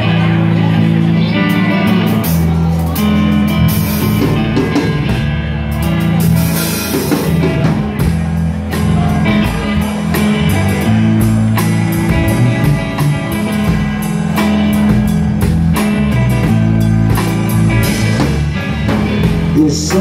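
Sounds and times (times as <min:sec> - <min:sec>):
bass guitar: 0:00.0 - 0:20.0
drum kit: 0:00.0 - 0:20.0
electric guitar: 0:00.0 - 0:20.0
man singing lead vocal: 0:19.5 - 0:20.0.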